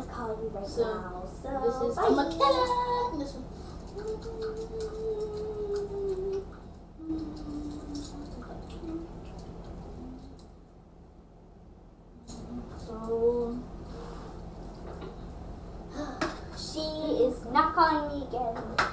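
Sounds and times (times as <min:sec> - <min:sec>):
faint low hum: 0:00.0 - 0:18.9
children's wordless vocal sounds: 0:01.3 - 0:09.2.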